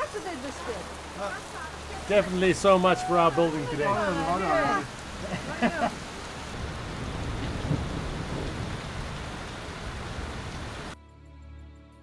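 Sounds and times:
heavy rain hissing: 0:00.0 - 0:11.0.

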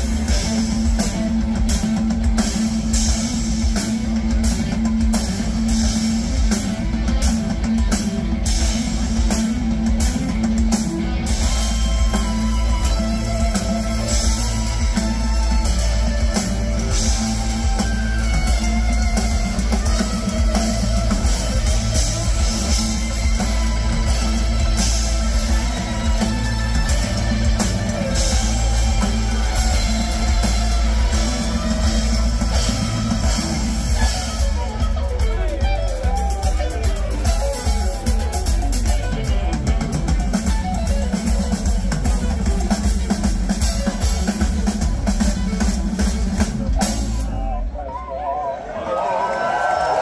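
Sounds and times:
electric guitar: 0:00.0 - 0:47.7
bass guitar: 0:00.0 - 0:47.8
drum kit: 0:00.0 - 0:47.8.

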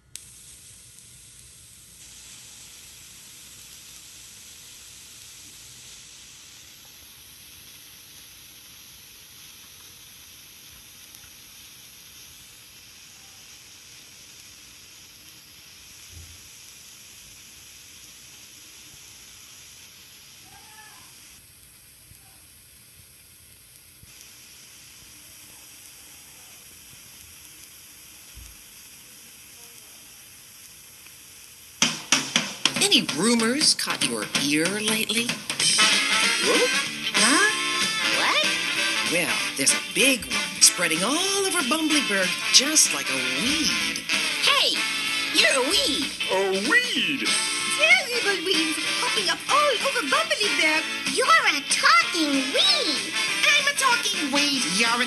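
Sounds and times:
faint television hiss: 0:00.0 - 0:55.0.

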